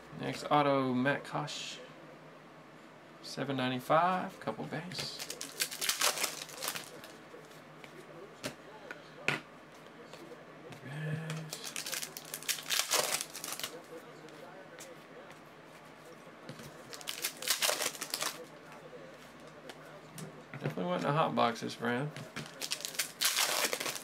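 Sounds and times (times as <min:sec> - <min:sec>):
foil wrappers crinkling and tearing: 0:05.1 - 0:07.2, 0:11.5 - 0:13.9, 0:16.8 - 0:18.5, 0:22.4 - 0:24.0.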